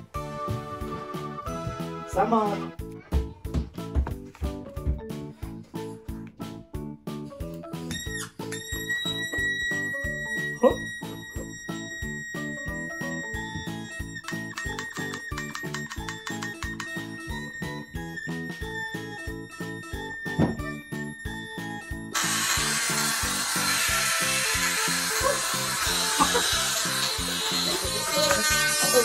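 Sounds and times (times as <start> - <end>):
squeaker whistle: 7.8 - 15.6
plucked-string background music: 9.9 - 29.0.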